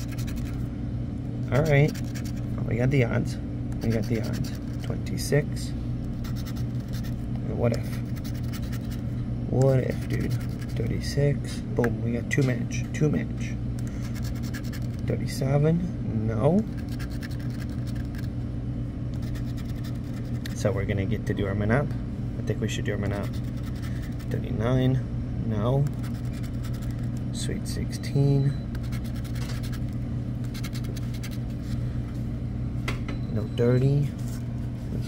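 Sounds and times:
scratching lottery ticket: 0.0 - 0.6, 1.5 - 2.5, 3.8 - 5.0, 6.1 - 9.0, 9.8 - 11.0, 14.0 - 15.1, 16.7 - 18.3, 19.2 - 20.7, 22.9 - 24.4, 25.9 - 27.1, 28.8 - 29.8, 30.4 - 31.8
steady low hum: 0.0 - 35.0.

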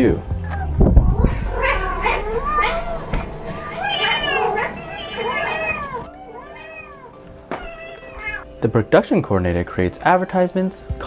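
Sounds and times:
cats meowing: 0.3 - 8.5
brief thump: 3.0 - 3.4.

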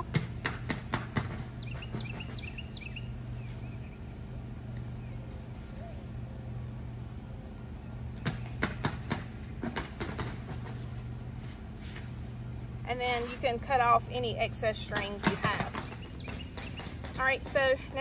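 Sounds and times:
low background hum: 0.0 - 18.0
bird chirping: 1.4 - 4.3, 15.5 - 17.4.

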